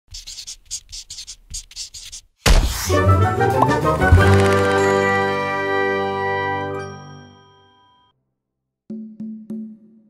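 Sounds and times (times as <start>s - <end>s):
pencil scribbling: 0.1s - 2.4s.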